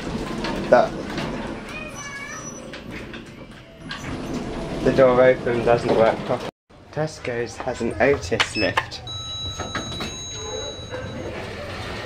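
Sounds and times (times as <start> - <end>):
lift door squeak: 1.0 - 5.1, 8.5 - 12.0.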